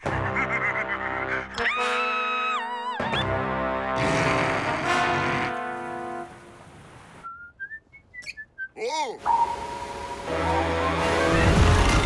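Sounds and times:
music: 0.0 - 6.4, 9.3 - 12.0
whistled tune: 7.2 - 11.5.

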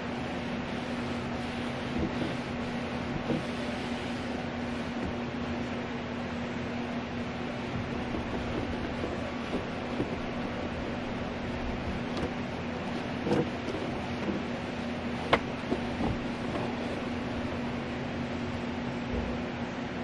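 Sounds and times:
steady mechanical hum: 0.0 - 20.0
light clicks and knocks: 15.2 - 17.1.

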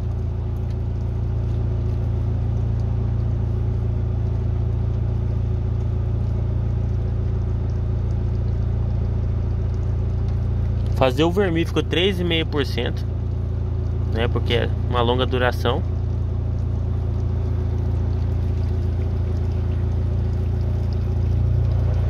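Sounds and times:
steady low mechanical hum: 0.0 - 22.0.

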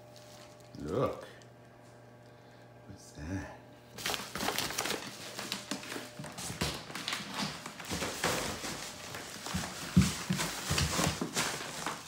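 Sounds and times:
footsteps on hardwood floor: 5.4 - 12.0.

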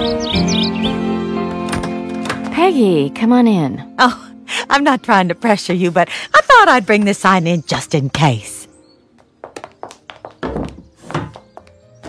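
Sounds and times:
background music: 0.0 - 12.0
footstep taps on hard floor: 9.2 - 11.8.

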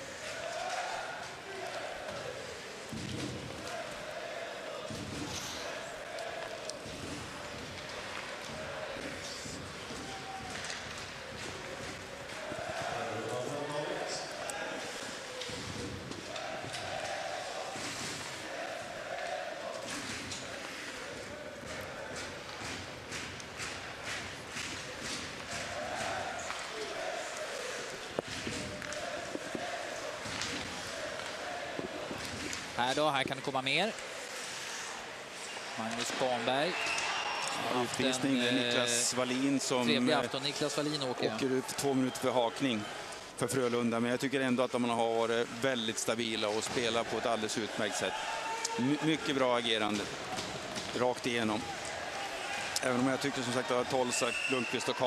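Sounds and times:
crowd chanting: 0.0 - 43.1
hockey sticks and puck clacking: 6.1 - 13.6, 14.4 - 18.5, 19.1 - 37.8, 46.2 - 55.0.

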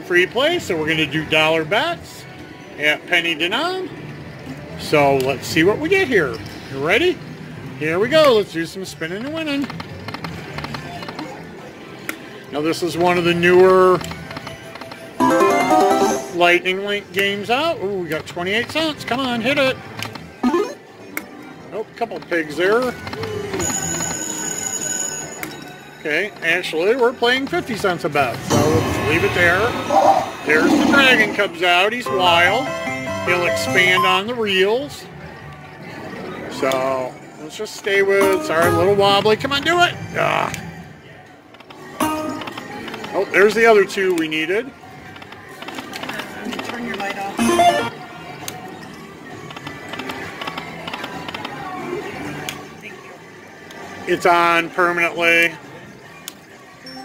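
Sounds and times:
busy casino background: 0.0 - 57.0
slot machine electronic tones: 15.1 - 16.6, 20.4 - 21.0, 32.0 - 34.6, 38.2 - 39.0, 47.4 - 48.0.

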